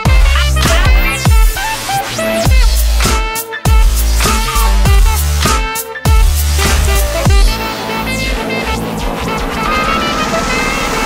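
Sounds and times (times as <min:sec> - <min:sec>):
dubstep electronic music: 0:00.0 - 0:11.0.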